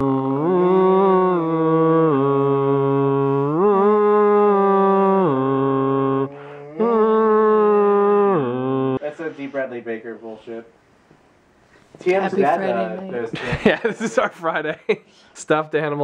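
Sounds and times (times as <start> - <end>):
person moaning: 0.0 - 9.0.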